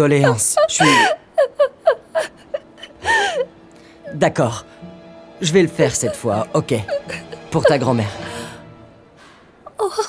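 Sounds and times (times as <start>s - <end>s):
woman sobbing: 0.0s - 3.6s, 5.8s - 8.5s, 9.7s - 10.0s
woman whimpering: 0.2s - 3.5s.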